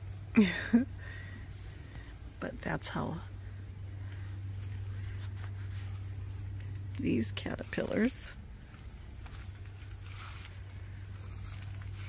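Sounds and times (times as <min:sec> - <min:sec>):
faint rustle: 0:03.4 - 0:12.0.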